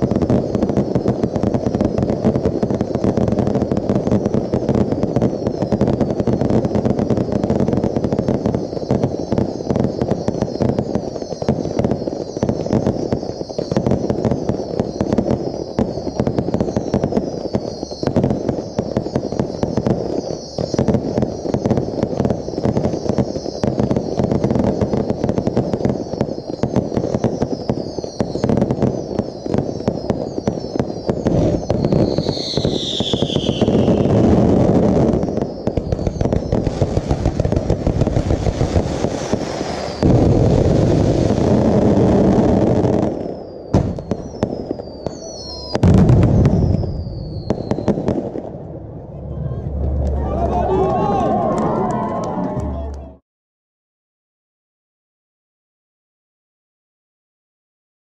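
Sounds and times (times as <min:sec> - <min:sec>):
whistling fireworks shells: 0:00.0 - 0:48.4
fireworks bursting and crackling: 0:00.0 - 0:53.2.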